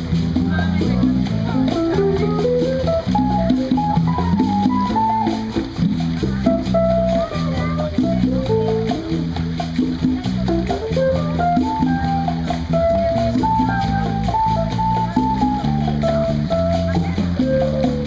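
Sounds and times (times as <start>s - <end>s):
hand drums: 0.0s - 18.0s
live band through speakers: 0.0s - 18.0s.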